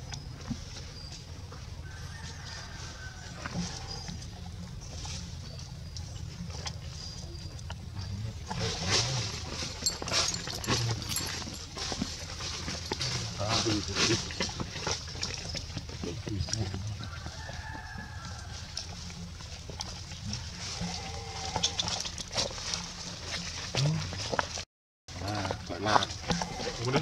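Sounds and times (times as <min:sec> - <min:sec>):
dry leaves crunching underfoot: 0:01.8 - 0:03.9, 0:08.6 - 0:15.1.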